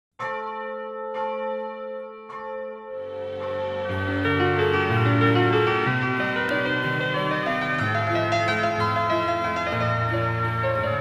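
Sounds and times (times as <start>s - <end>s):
church bell ringing: 0.2s - 11.0s.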